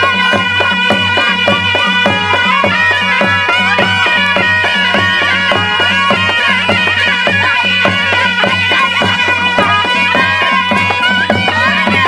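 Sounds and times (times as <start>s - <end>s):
drum beat: 0.0s - 12.0s
shehnai pipes melody: 0.0s - 12.0s.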